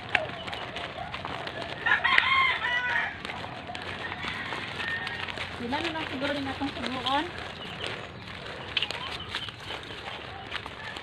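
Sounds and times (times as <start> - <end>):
rooster crowing: 1.7 - 5.6.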